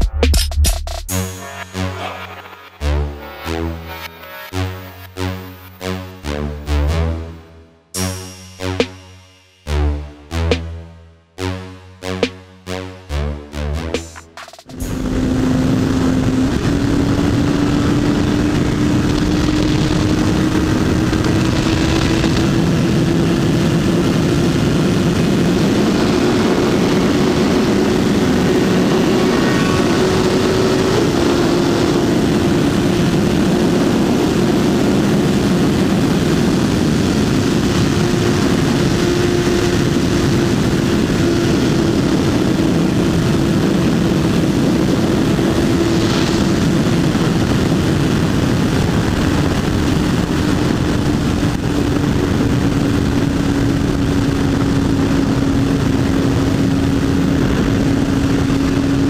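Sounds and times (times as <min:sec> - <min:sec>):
motorcycle engine running: 0:11.4 - 0:59.0
wind rush on microphone: 0:14.8 - 0:59.0.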